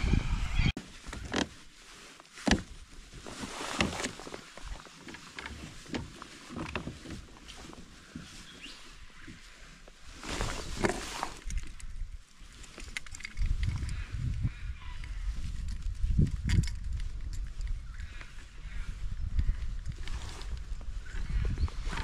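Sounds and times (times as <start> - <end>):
birds calling: 8.0 - 9.4
fishing tackle clicks and knocks: 12.6 - 14.4, 15.6 - 17.8.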